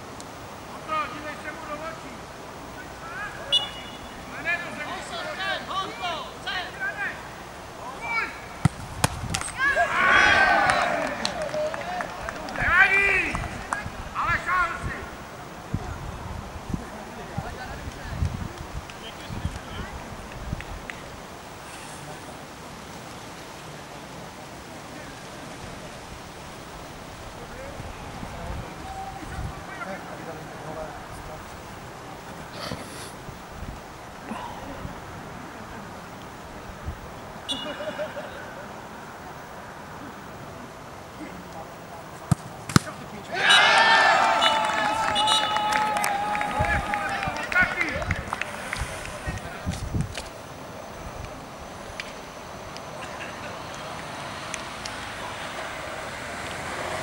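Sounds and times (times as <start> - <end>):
steady outdoor hiss: 0.0 - 57.0
players shouting and cheering: 2.8 - 15.2, 28.3 - 30.9, 42.3 - 49.7
wind rumbling on microphone: 8.7 - 9.6, 12.2 - 14.2, 14.8 - 21.4, 25.6 - 29.7, 33.2 - 35.3, 36.4 - 37.4, 48.0 - 52.0
long drawn-out yell: 9.6 - 13.6, 43.3 - 48.0.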